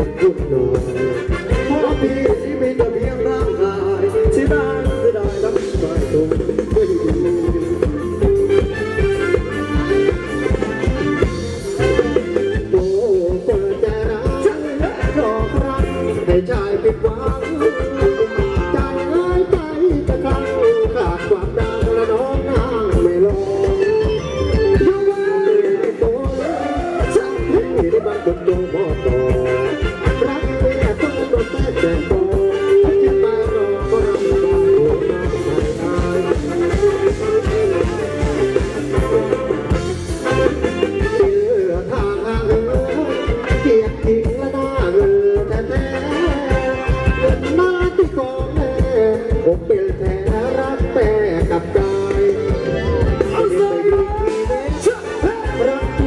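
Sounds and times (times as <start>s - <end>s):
person singing: 0.0s - 56.0s
steady drum beat: 0.0s - 56.0s.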